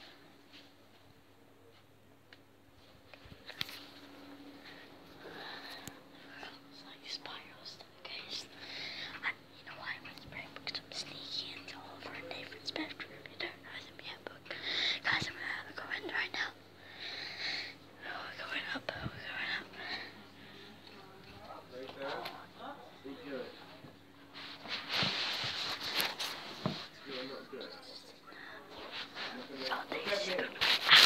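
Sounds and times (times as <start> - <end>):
child whispering: 5.4 - 16.6, 17.3 - 20.2.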